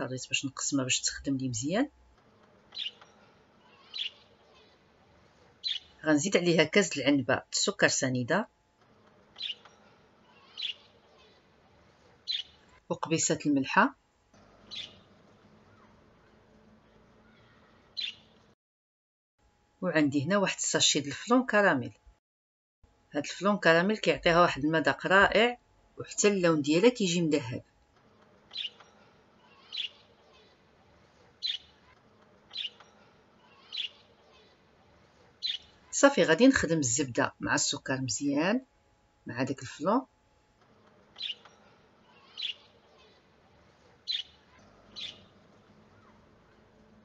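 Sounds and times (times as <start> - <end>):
small bird chirping: 2.7 - 4.8, 5.6 - 6.0, 9.3 - 11.5, 12.2 - 12.8, 14.6 - 18.5, 28.5 - 36.0, 41.1 - 47.0.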